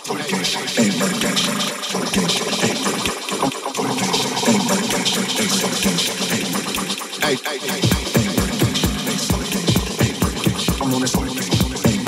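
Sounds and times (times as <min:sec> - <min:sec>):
dj mix with chopped vocals: 0:00.0 - 0:12.0.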